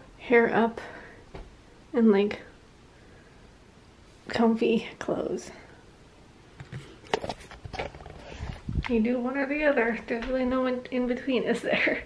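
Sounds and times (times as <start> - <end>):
woman speaking: 0.2 - 1.0, 2.0 - 2.5, 4.3 - 5.7, 8.8 - 12.0.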